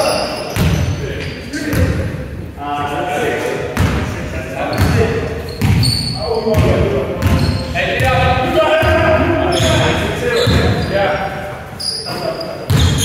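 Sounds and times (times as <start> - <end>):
basketball bouncing on hardwood floor: 5.6 - 5.9, 6.5 - 8.2, 12.7 - 13.0.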